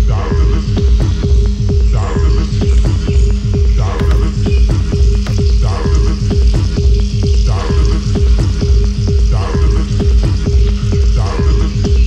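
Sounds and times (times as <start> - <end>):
hissing crackly percussion: 0.0 - 12.0
kick-drum beat: 0.0 - 12.0.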